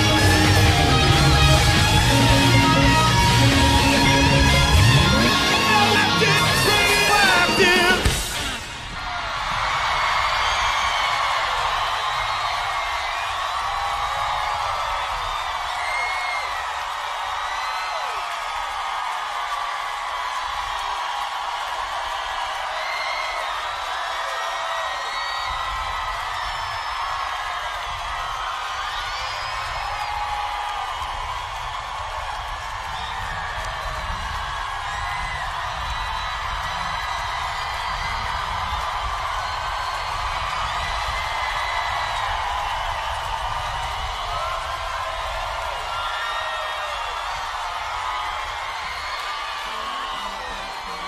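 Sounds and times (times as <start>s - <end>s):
crowd cheering and screaming: 0.0s - 51.0s
whoops and whistles: 24.8s - 31.3s.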